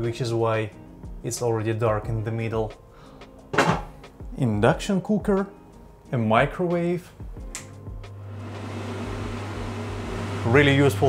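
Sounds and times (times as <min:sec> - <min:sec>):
extractor fan humming: 0:08.0 - 0:11.0.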